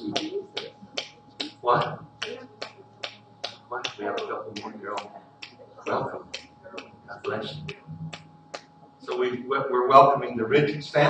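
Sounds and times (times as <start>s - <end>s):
sharp rhythmic clicks: 0.0s - 9.4s
faint steady hum: 0.0s - 11.0s
person speaking: 0.0s - 11.0s.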